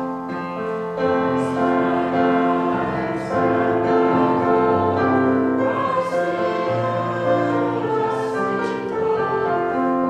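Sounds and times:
choir singing sustained chords: 0:00.6 - 0:10.0.

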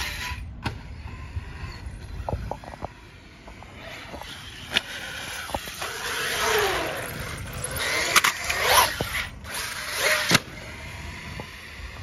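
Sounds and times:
electric motor whining: 0:00.0 - 0:12.0.

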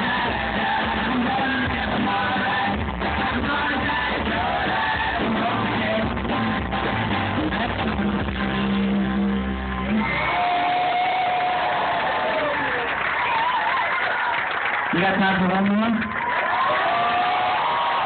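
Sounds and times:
live band with guitars and vocals: 0:00.0 - 0:12.6
crowd cheering and yelling: 0:00.0 - 0:18.0.

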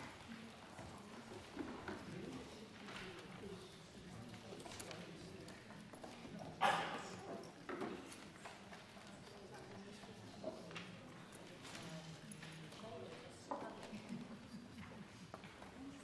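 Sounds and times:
murmur of people talking: 0:00.0 - 0:16.0.

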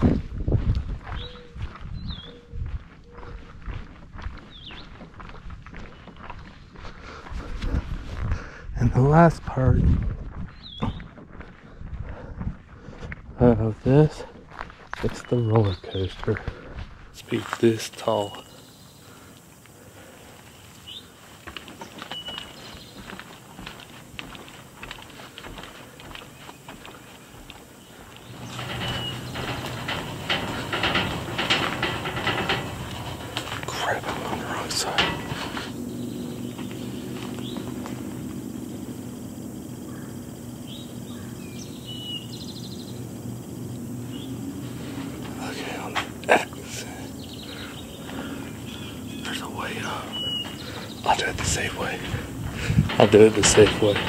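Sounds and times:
bird chirps: 0:01.1 - 0:03.2, 0:21.8 - 0:23.6, 0:35.8 - 0:39.0, 0:39.6 - 0:43.2, 0:47.1 - 0:51.3
roller coaster train rattling: 0:17.2 - 0:54.0
steady low hum: 0:17.2 - 0:54.0.

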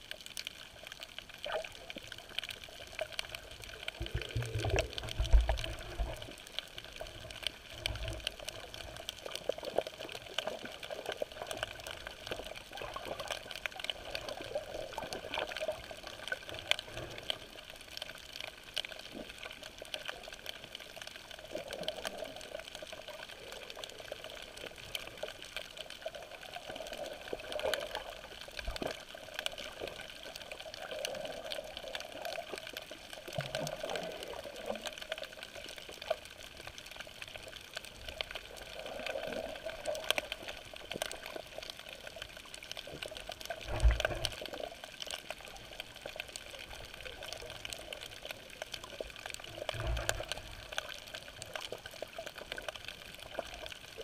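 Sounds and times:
small crackling clicks: 0:00.0 - 0:54.0
underwater wash of water: 0:00.0 - 0:54.0.

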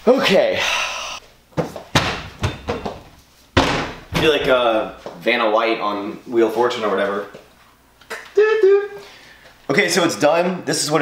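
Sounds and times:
cabinet door slamming shut: 0:01.9 - 0:03.0, 0:03.6 - 0:04.4.

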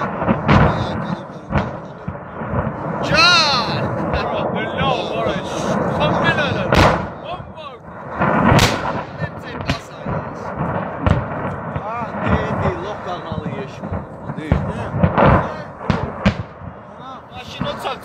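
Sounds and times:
fire rumble: 0:00.0 - 0:18.0.

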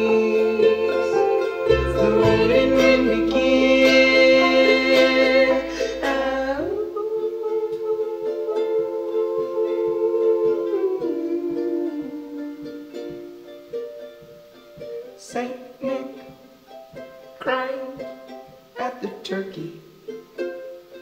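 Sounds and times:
upright bass: 0:00.0 - 0:07.1
banjo: 0:00.0 - 0:21.0
charango strummed: 0:00.0 - 0:21.0.

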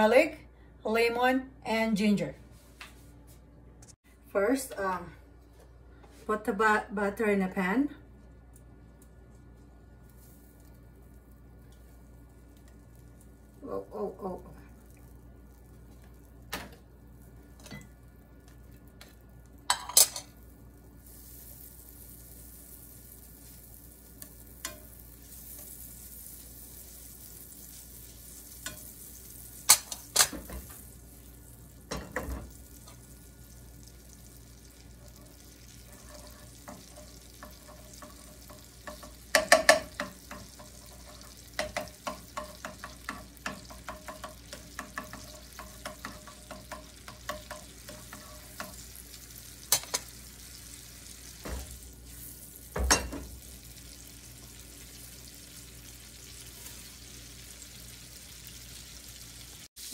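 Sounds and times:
butter sizzling in a pan: 0:09.4 - 0:59.9
spatula tapping and scraping pan: 0:24.2 - 0:25.8, 0:35.1 - 0:49.0, 0:49.7 - 0:50.1.

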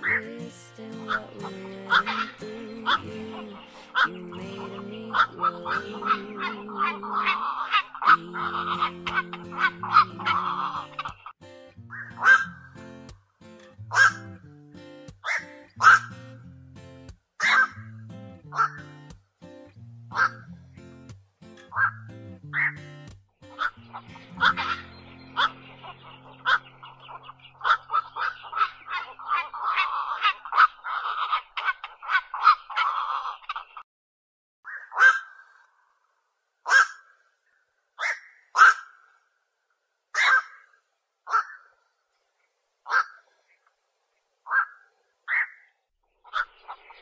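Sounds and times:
background music: 0:00.0 - 0:07.4, 0:08.0 - 0:28.4
herons giving harsh calls: 0:00.9 - 0:11.3, 0:11.9 - 0:12.6, 0:13.9 - 0:14.4, 0:15.2 - 0:16.2, 0:17.4 - 0:17.9, 0:18.5 - 0:18.9, 0:20.1 - 0:20.5, 0:22.6 - 0:22.9, 0:23.5 - 0:33.4, 0:36.7 - 0:37.2, 0:38.0 - 0:39.1, 0:40.2 - 0:40.7, 0:41.3 - 0:41.7, 0:42.9 - 0:43.2, 0:44.5 - 0:45.6.

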